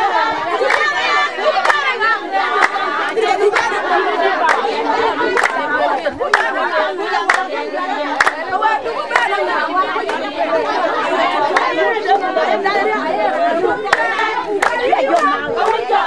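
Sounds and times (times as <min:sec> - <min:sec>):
hand claps: 0:05.4 - 0:05.6, 0:08.2 - 0:08.4, 0:13.9 - 0:15.8.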